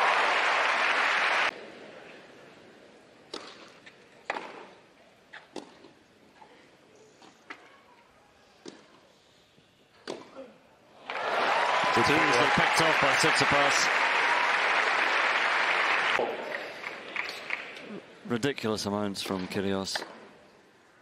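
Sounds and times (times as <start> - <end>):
crowd applause: 0.0 - 1.5, 11.0 - 17.8
racket striking ball: 3.3 - 3.7.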